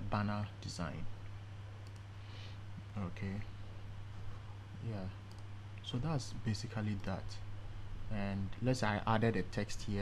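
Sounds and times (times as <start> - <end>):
computer mouse click: 1.8 - 2.1, 5.3 - 5.5.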